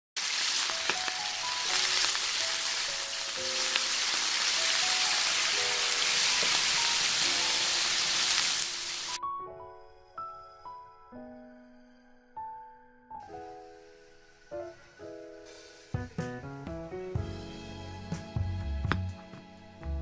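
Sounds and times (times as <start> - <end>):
patties sizzling in oil: 0.2 - 9.2, 13.3 - 16.3.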